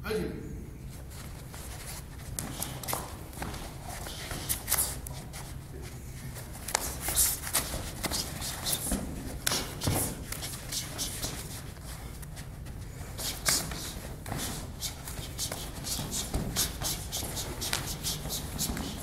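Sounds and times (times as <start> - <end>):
bare feet shuffling on a mat: 0.9 - 19.0.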